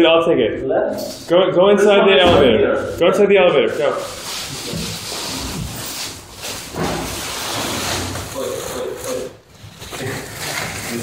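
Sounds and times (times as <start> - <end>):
plastic sacks rustling: 3.7 - 11.0.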